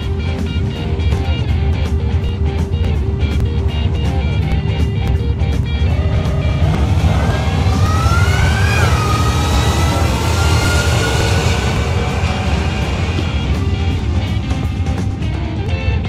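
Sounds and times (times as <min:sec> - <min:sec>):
background music with steady beat: 0:00.0 - 0:16.0
pickup truck engine accelerating: 0:00.1 - 0:16.0.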